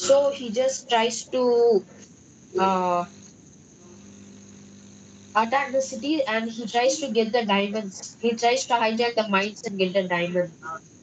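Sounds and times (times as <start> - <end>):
background hiss: 0.0 - 11.0
faint steady hum: 0.0 - 11.0.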